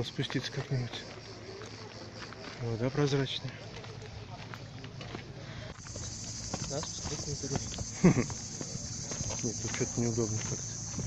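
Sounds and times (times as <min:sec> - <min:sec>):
footsteps on gravel: 0:00.0 - 0:11.0
high insect buzz: 0:05.8 - 0:11.0.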